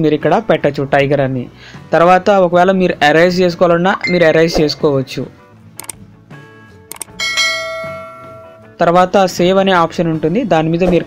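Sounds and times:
bright bell chime: 4.0s - 4.6s, 7.2s - 8.8s
click: 6.9s - 7.1s.

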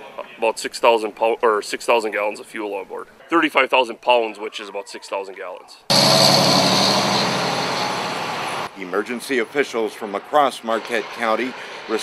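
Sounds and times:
fire engine driving past: 5.9s - 8.8s.

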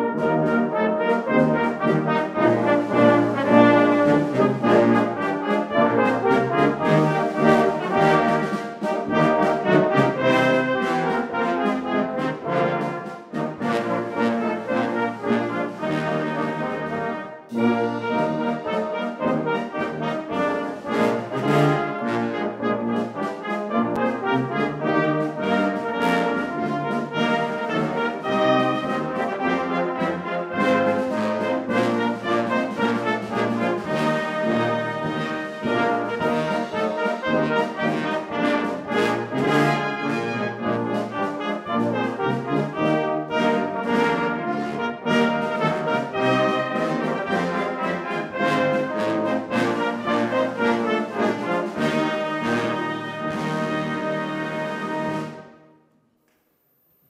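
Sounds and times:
brass band playing: 0.0s - 55.7s.

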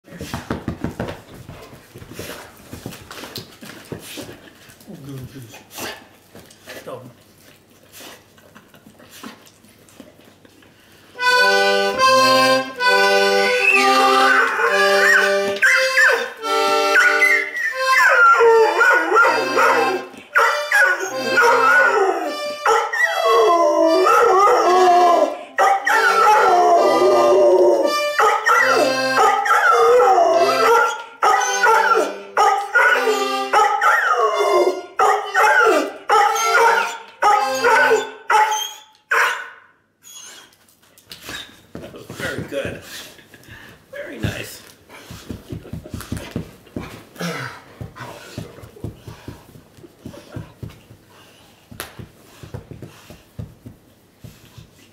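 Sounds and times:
button accordion playing: 11.2s - 23.0s, 27.8s - 29.4s, 30.3s - 30.9s, 31.5s - 33.6s, 36.4s - 38.0s
dog howling: 13.7s - 38.8s.

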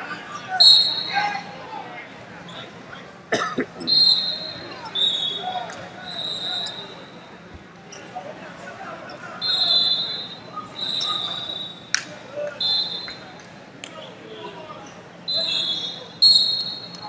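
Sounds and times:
referee whistle blasts: 0.6s - 1.2s, 3.8s - 7.0s, 9.4s - 11.9s, 12.6s - 13.2s, 15.3s - 17.0s.

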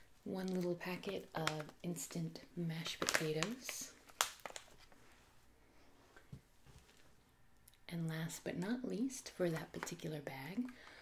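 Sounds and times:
soft rustling of packaging: 0.2s - 7.9s
packaging crinkling: 0.4s - 2.2s, 2.8s - 5.0s.

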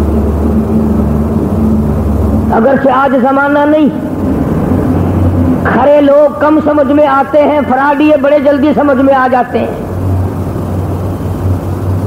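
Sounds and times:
background rush of noise: 0.0s - 12.0s
low electrical hum: 0.0s - 12.0s.

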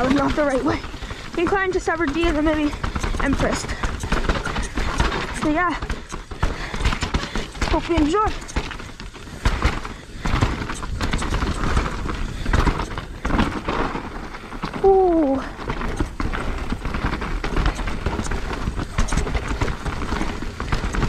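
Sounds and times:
bike rattling: 0.0s - 21.0s
bike tyres crunching on stones: 0.0s - 21.0s.

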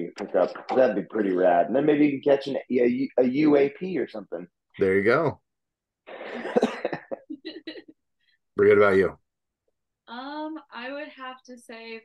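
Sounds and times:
man laughing: 6.1s - 7.9s.

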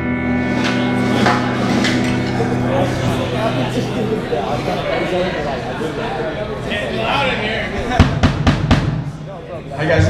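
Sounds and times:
snare and bass drum hits: 8.0s - 9.2s.

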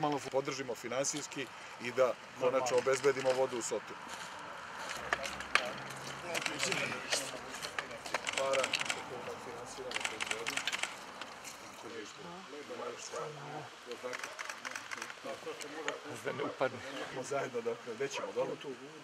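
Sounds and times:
people talking while walking: 0.0s - 19.0s.

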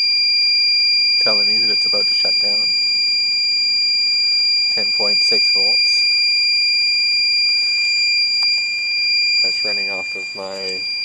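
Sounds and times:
high-pitched alarm tone: 0.0s - 11.0s.

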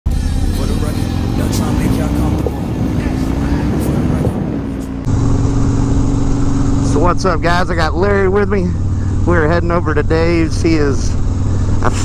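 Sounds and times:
motorcycle engine running: 0.1s - 12.0s
wind noise on microphone: 2.2s - 5.1s.

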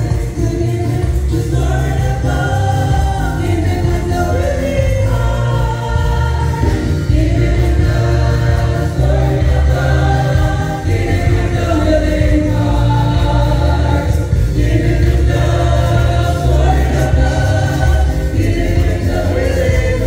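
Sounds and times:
gospel choir singing: 0.0s - 20.0s
instrumental accompaniment with bass: 0.0s - 20.0s.

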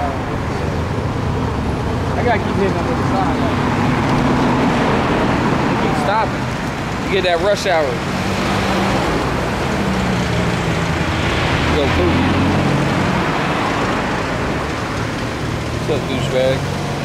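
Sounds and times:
car passing close: 0.0s - 17.0s
road traffic noise: 0.0s - 17.0s.

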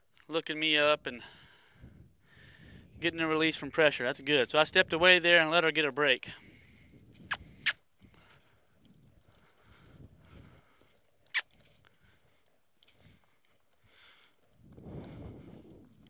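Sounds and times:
horse hoofbeats on dirt: 8.2s - 16.0s.

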